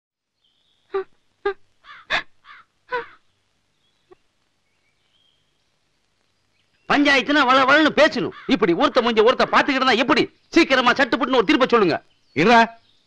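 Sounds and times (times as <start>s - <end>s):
crow cawing: 1.8s - 3.2s, 8.1s - 9.7s.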